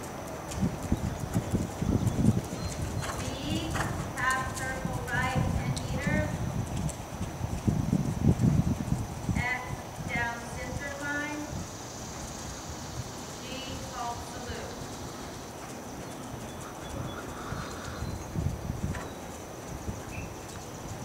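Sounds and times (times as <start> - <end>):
hoofbeats on soft ground: 0.0 - 21.0.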